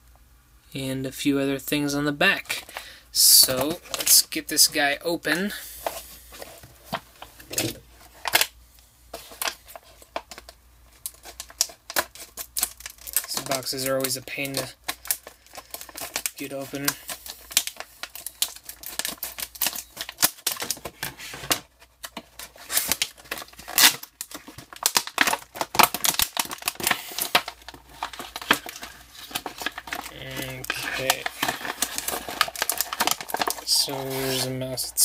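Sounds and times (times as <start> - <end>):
plastic packaging crackling: 2.2 - 5.0, 5.8 - 35.0.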